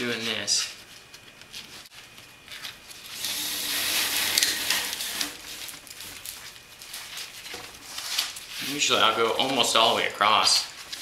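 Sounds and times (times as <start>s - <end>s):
paper cord rustling and sliding: 0.2s - 10.0s.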